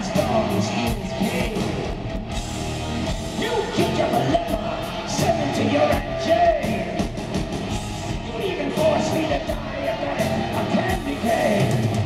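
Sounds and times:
drums: 0:00.0 - 0:12.0
electric guitars: 0:00.0 - 0:12.0
live hard rock band: 0:00.0 - 0:12.0.

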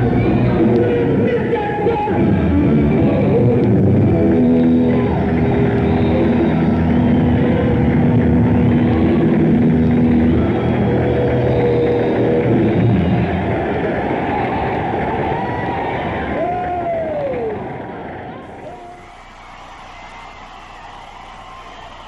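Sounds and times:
live rock band sustained notes: 0:00.0 - 0:13.9
dense wash of noise: 0:00.0 - 0:18.7.

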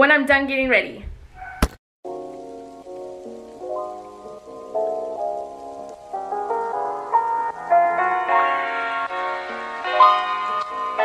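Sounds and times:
soft melody over chords: 0:02.1 - 0:11.0.

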